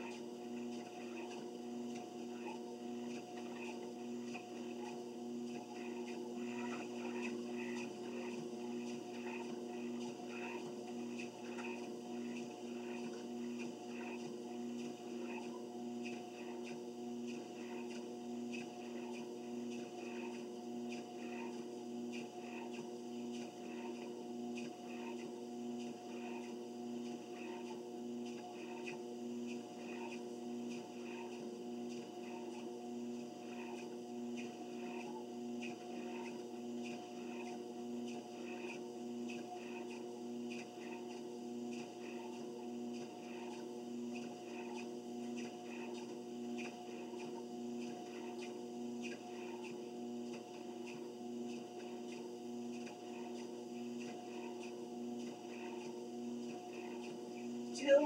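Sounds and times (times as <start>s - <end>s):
footsteps on treadmill belt: 0.0s - 58.0s
treadmill motor hum: 0.0s - 58.0s.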